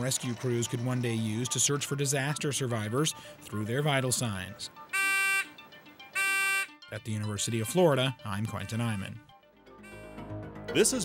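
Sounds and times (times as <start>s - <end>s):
faint background music: 0.0s - 11.0s
electronic buzzer beeping: 4.9s - 6.8s, 9.8s - 10.4s.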